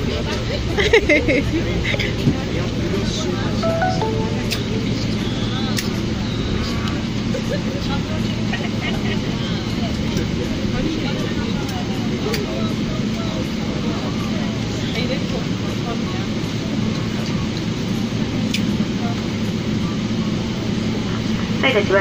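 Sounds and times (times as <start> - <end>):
faint passenger voices: 0.0 - 22.0.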